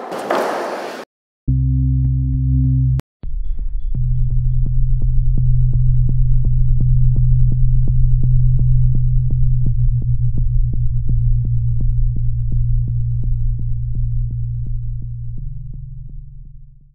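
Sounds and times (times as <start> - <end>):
low synthesizer drone: 1.5 - 16.9.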